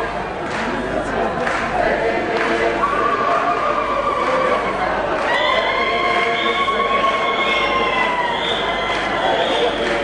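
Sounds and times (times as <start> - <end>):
murmur of a large crowd: 0.0 - 10.0.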